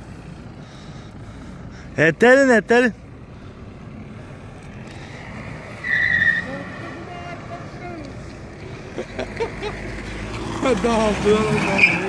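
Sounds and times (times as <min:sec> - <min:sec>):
engine and tyre noise: 0:00.0 - 0:12.0
car tyres skidding: 0:03.3 - 0:12.0
high tyre squeal: 0:04.9 - 0:08.0, 0:11.1 - 0:12.0.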